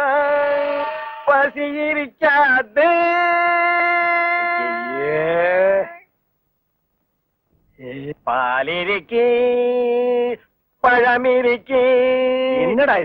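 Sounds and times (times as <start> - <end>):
man singing long held note: 2.9 - 5.9.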